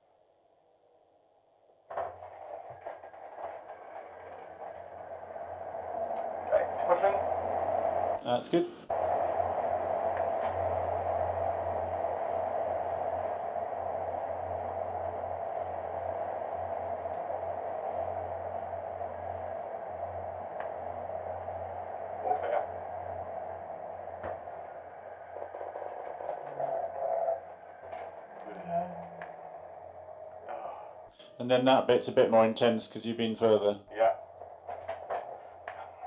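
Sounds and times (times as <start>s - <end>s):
centrifuge droning hum: 0.5s - 36.0s
faint clicks: 10.0s - 21.7s.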